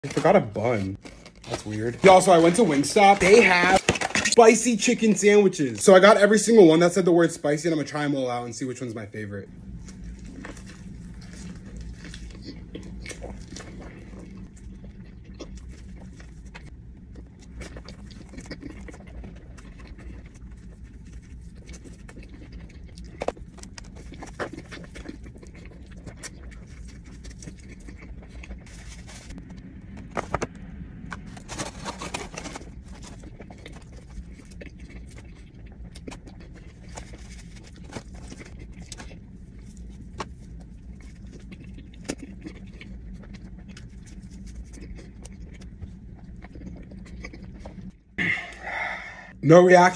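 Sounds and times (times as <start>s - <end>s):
steady low hum: 0.0s - 49.9s
chewing crunches and wet clicks: 9.6s - 30.0s, 32.1s - 48.6s.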